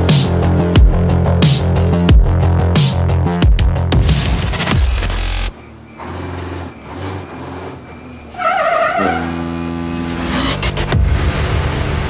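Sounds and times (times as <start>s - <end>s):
truck engine rumble: 3.8s - 12.0s
wavering horn blast: 5.9s - 10.6s.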